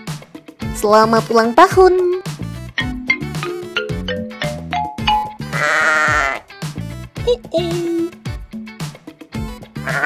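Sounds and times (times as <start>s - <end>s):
light children's music: 0.0s - 10.0s
goat bleating: 5.4s - 6.5s, 9.8s - 10.0s.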